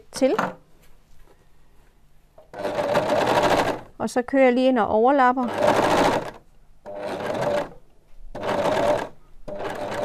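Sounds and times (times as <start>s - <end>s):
overlocker sewing: 2.5s - 3.9s, 5.4s - 10.0s.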